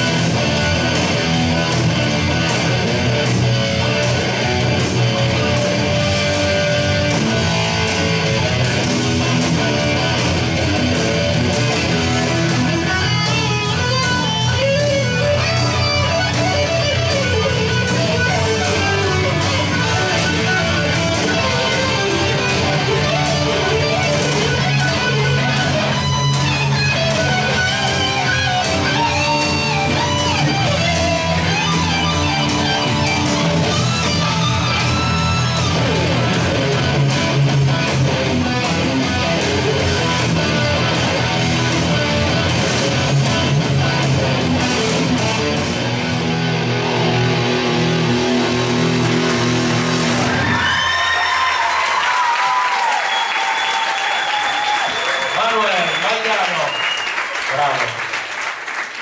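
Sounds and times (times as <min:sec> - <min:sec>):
sustained low guitar part: 0:00.0 - 0:50.4
electric guitar lead with bent notes: 0:00.0 - 0:50.7.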